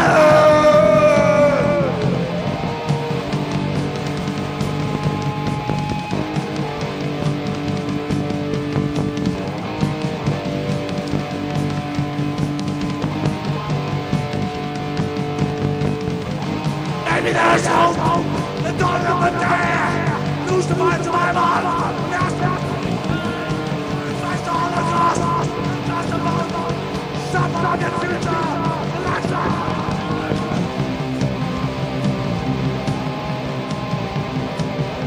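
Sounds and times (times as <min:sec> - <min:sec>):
punk rock band playing: 0:00.0 - 0:35.0.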